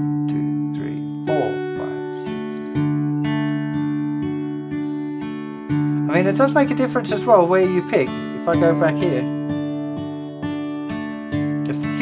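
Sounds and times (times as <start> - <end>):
fingerpicked acoustic guitar: 0.0 - 12.0.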